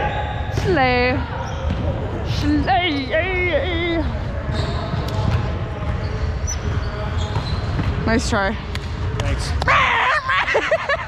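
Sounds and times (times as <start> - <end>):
distant chatter of players: 0.0 - 9.7.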